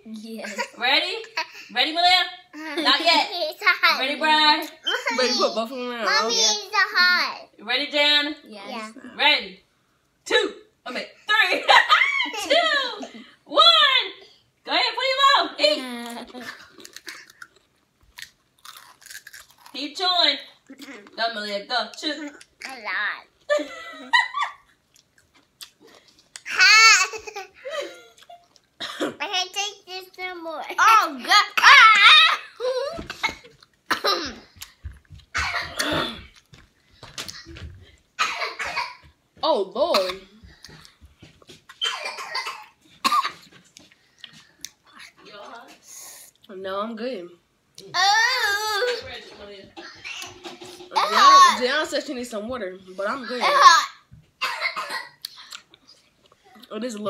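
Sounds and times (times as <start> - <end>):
chips crunching: 16.7 - 19.8
person coughing: 35.4 - 36.4, 38.2 - 39.0.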